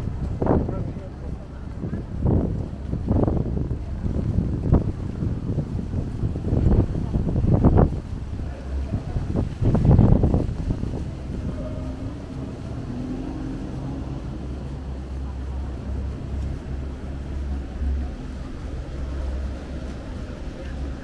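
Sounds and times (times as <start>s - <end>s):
city street traffic rumble: 0.0s - 21.0s
faint engine hum: 0.0s - 21.0s
wind buffeting microphone: 0.0s - 21.0s.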